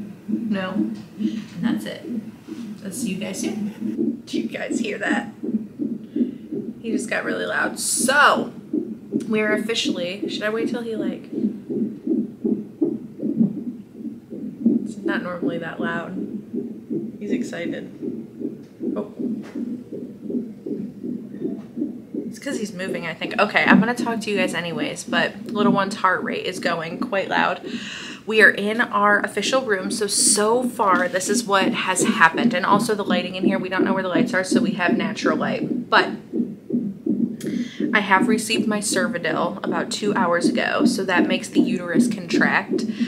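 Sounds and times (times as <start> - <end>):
doppler heartbeat pulses: 0.0 - 43.0.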